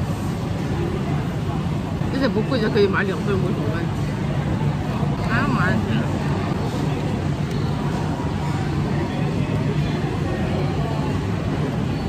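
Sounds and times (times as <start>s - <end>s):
chatter of many diners: 0.0s - 12.0s
steady low hum: 0.0s - 12.0s.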